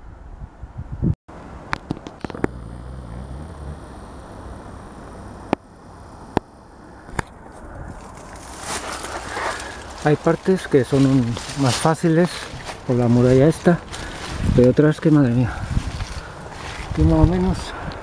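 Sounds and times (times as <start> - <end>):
distant vehicle engine hum: 1.3 - 14.4
footsteps over rock: 7.1 - 17.2
rustling of dry scrub: 7.4 - 17.3.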